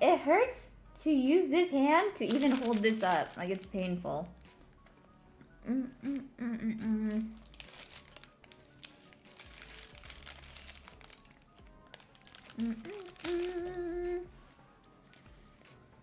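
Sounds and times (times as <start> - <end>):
paper sleeve crinkling: 2.2 - 3.7, 7.2 - 14.2
person humming mm: 5.5 - 7.4, 12.6 - 14.3.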